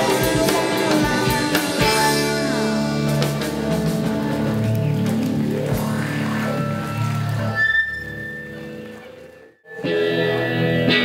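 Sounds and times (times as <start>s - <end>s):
live rock band playing: 0.0s - 7.6s, 8.5s - 11.0s.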